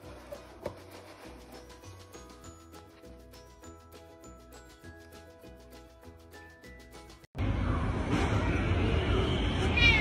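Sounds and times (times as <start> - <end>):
cat meowing: 9.7 - 10.0.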